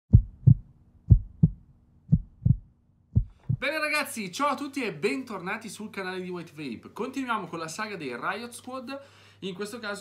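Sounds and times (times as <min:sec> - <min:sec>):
heartbeat thumps: 0:00.1 - 0:03.7.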